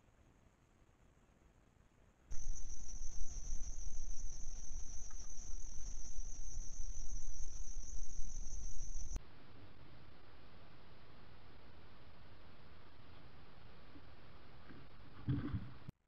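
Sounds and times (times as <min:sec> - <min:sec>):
insects droning: 0:00.0 - 0:15.8
low rumble: 0:02.3 - 0:10.4.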